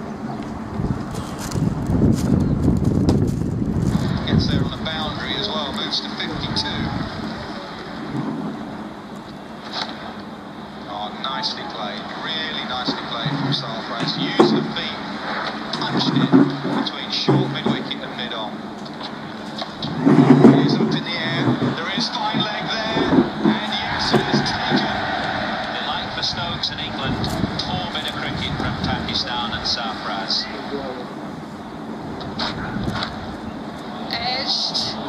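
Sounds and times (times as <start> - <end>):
indistinct talking: 3.9 - 35.0
high-pitched background tone: 10.9 - 14.9.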